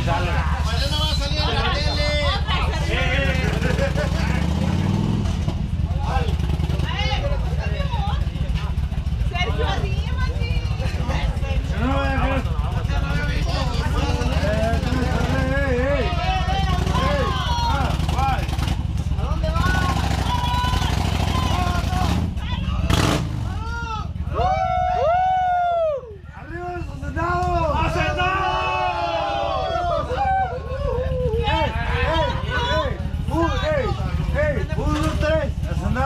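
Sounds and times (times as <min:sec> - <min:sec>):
motorcycle engine idling: 0:00.0 - 0:36.0
people talking over one another: 0:00.0 - 0:36.0.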